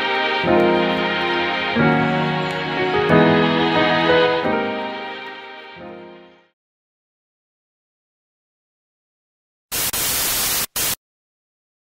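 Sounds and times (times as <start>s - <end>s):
static hiss glitch effect: 9.7s - 11.0s.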